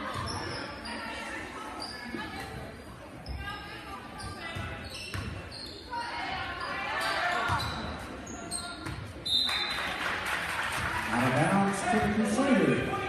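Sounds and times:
sneakers squeaking: 0.0 - 10.0
basketball bouncing: 4.5 - 5.4
crowd voices echoing: 10.8 - 13.0.

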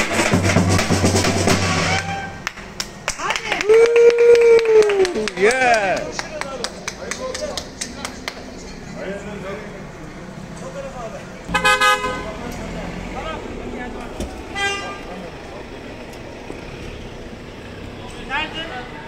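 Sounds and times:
street crowd chatter: 0.0 - 19.0
car horn tooting: 1.7 - 2.5, 11.5 - 12.4, 14.5 - 15.1.

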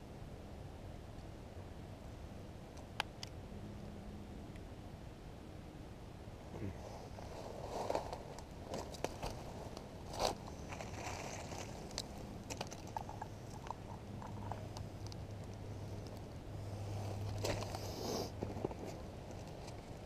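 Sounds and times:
footsteps crunching dry leaves: 7.2 - 12.2.

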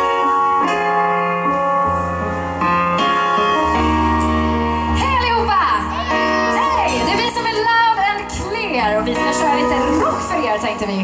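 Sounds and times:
sustained keyboard chords: 0.0 - 11.0
steady bass line: 1.6 - 11.0.

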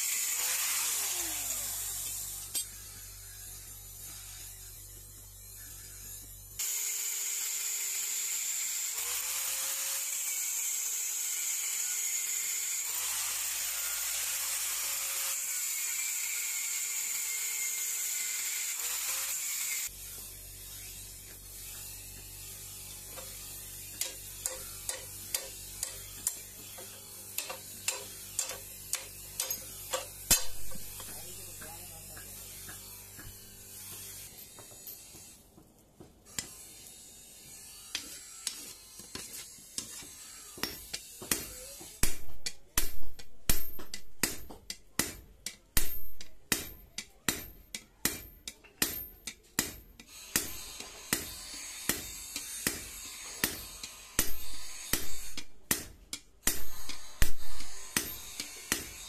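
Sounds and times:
hammer striking steel on anvil: 23.1 - 35.2, 37.9 - 59.0.

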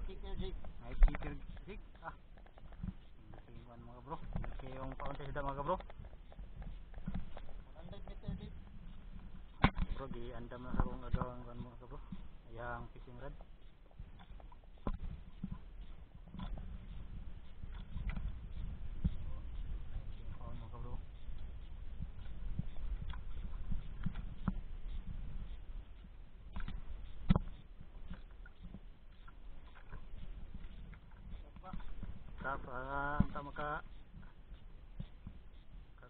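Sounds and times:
water noise: 0.0 - 36.0
wind buffeting microphone: 0.0 - 36.0.

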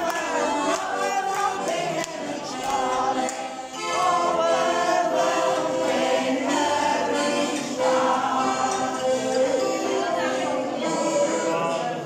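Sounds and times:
group of voices singing: 0.0 - 12.0
piano accordion: 0.0 - 12.0.

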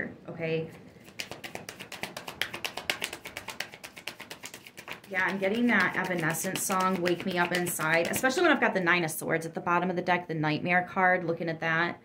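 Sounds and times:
rapid light taps: 1.0 - 8.7.

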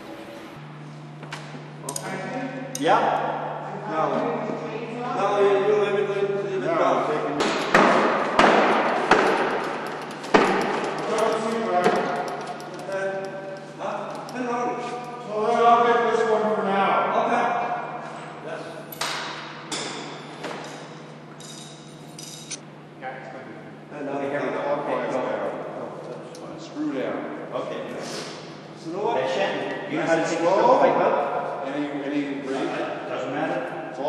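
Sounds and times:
socket wrench clinking on bolts: 21.4 - 22.6.

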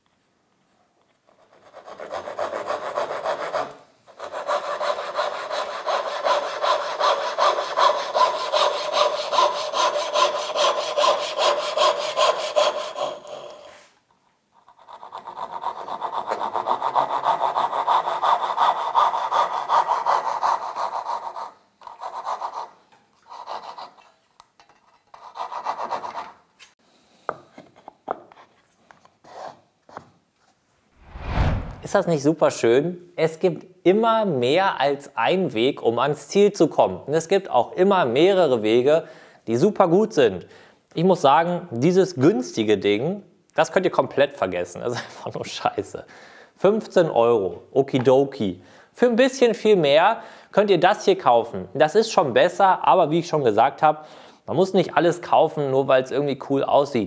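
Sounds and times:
hand saw cutting plywood: 1.8 - 13.7, 14.8 - 22.6.

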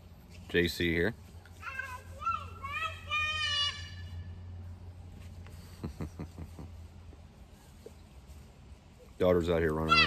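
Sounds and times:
steady low hum: 0.0 - 10.0
girl yelling: 1.6 - 4.1.

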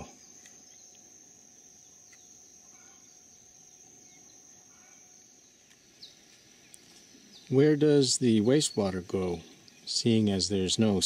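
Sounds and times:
high-pitched insect drone: 0.0 - 11.0.

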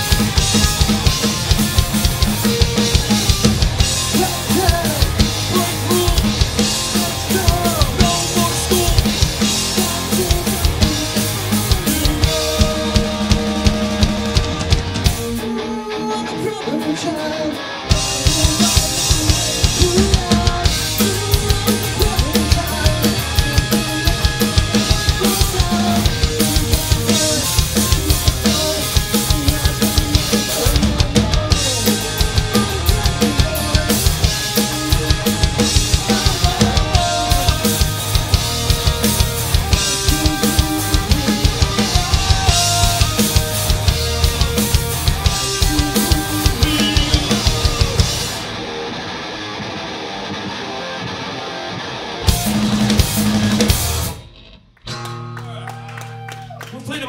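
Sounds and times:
driving drum beat: 0.0 - 15.7, 17.8 - 48.6, 52.3 - 54.3
electric guitar alone: 0.0 - 57.0
live rock band playing: 0.0 - 57.0.

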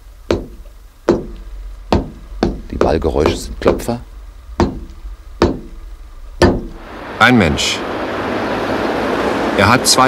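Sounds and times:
sharp knocker knocks: 0.3 - 4.0, 4.6 - 5.8, 6.4 - 6.8.

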